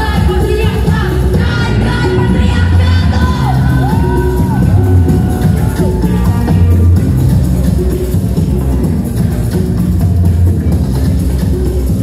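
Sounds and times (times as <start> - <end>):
pop electronic music: 0.0 - 12.0
pulsing bass: 0.0 - 12.0
sliding pitched synth line: 2.1 - 8.8
crowd shouting: 3.2 - 6.8.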